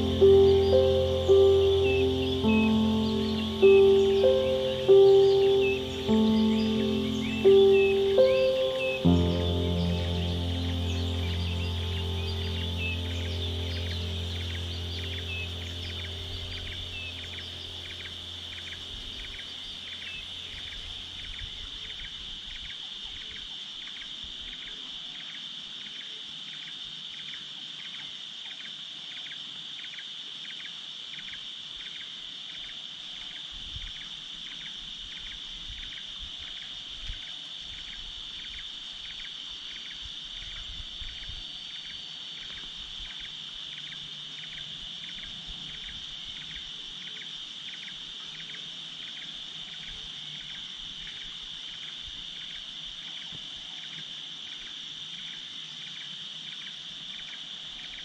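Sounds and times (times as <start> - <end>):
insect high-pitched trill: 0.0 - 22.3
insect chirping: 0.0 - 58.0.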